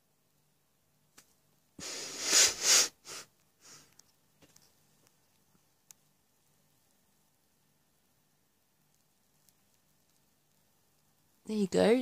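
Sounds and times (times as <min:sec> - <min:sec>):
person breathing hard through nose: 0:01.8 - 0:04.0
person sniffing: 0:01.8 - 0:04.0.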